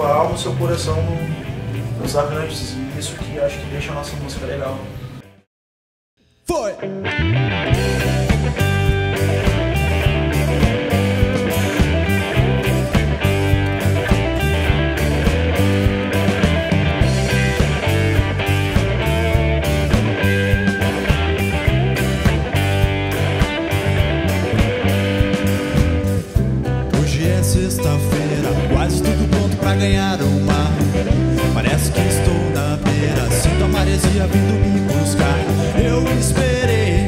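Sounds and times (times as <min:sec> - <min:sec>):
live rock band playing: 0:00.0 - 0:05.2, 0:06.8 - 0:37.0.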